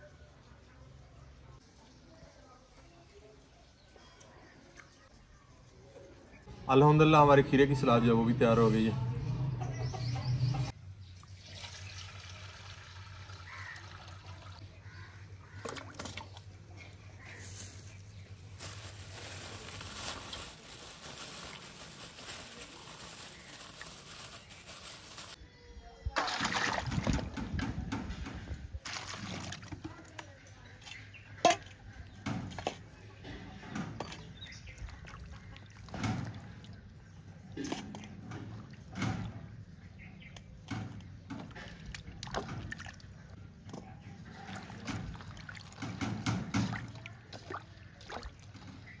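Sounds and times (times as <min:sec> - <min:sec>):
water sloshing in steel bowl: 0:28.8 - 0:49.0.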